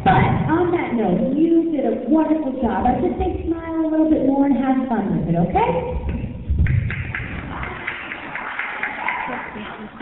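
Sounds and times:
audience applauding: 6.9 - 10.0.

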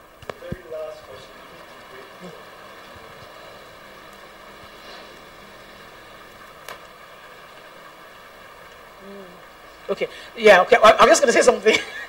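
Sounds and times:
faint electrical hum: 0.0 - 12.0
steady background hiss: 0.0 - 12.0.

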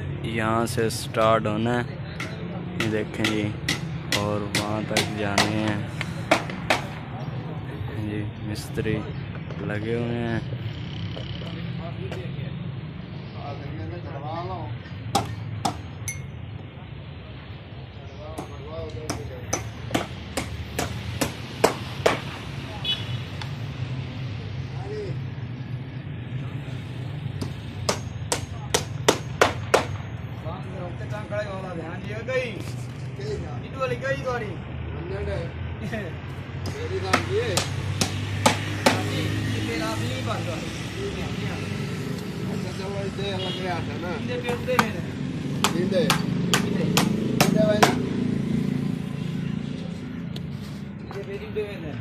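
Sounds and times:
men talking: 0.0 - 20.2, 24.3 - 25.7, 30.2 - 52.0.

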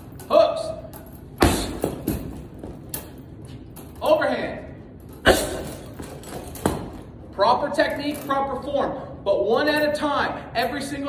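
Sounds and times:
punch thudding on punching bag: 1.4 - 2.4.

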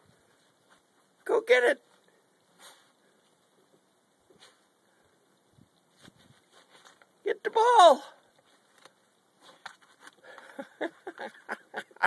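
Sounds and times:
dog pawing in snow: 5.9 - 7.1.

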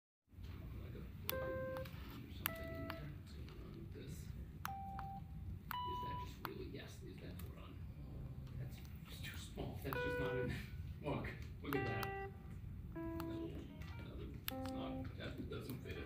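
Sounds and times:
push button clicks: 11.7 - 12.3, 13.0 - 15.1.

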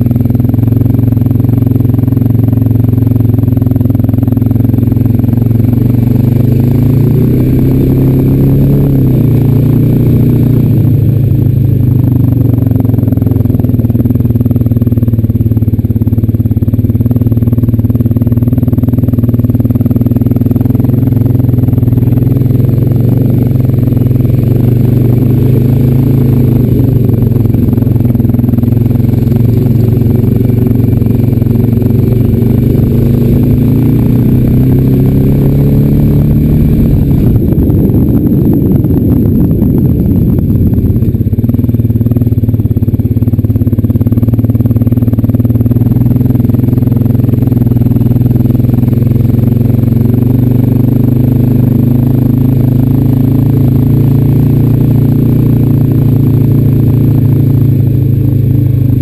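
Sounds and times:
atv engine revving: 0.0 - 59.0.

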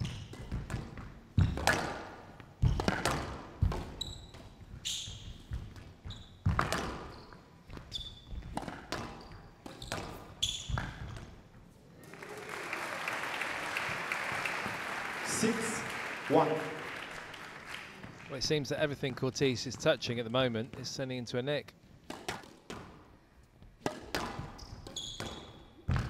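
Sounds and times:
shoes squeaking on wooden floor: 3.9 - 11.6, 24.4 - 25.8
crowd applauding: 12.0 - 18.5
squash ball cracks: 23.8 - 26.0.

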